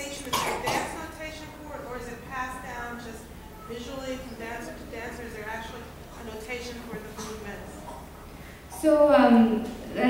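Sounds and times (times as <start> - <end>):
faint speech in a hall: 0.0 - 10.0
person coughing: 0.3 - 1.0.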